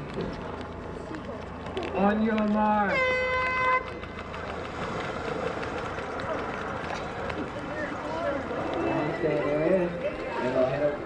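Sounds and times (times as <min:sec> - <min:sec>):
crowd noise: 0:00.0 - 0:11.0
swimmers splashing: 0:00.0 - 0:11.0
race starting horn: 0:02.8 - 0:04.0.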